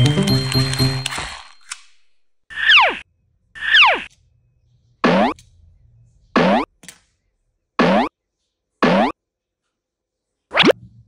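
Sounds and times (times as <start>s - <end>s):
cartoon boing sliding zips: 5.0s - 5.4s, 6.4s - 6.7s, 7.8s - 8.1s, 8.8s - 9.2s.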